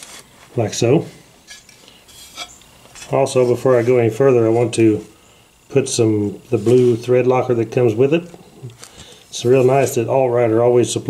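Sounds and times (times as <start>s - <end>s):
quiet rustle: 0.0s - 10.5s.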